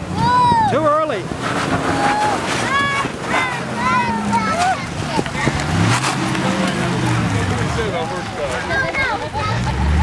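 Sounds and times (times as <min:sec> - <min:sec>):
onlookers talking: 0:00.0 - 0:10.0.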